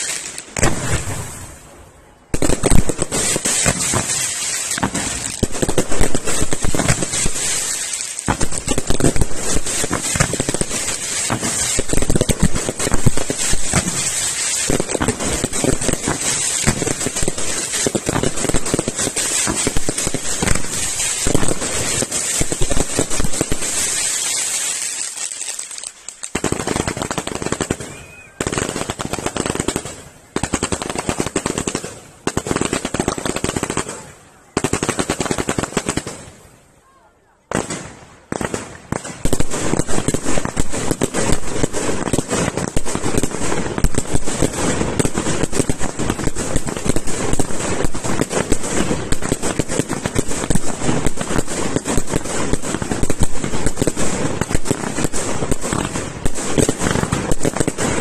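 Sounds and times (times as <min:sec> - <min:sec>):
fireworks barrage: 0:00.0 - 0:36.7, 0:37.4 - 0:58.0.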